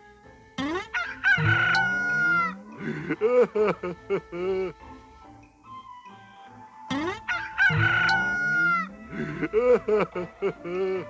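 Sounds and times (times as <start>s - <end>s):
rooster crowing: 0.9s - 3.5s, 6.9s - 11.0s.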